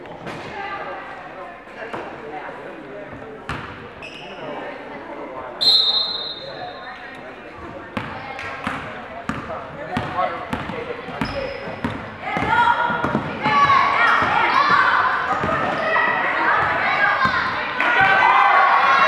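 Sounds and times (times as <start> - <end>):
referee's whistle blast: 5.6 - 6.6.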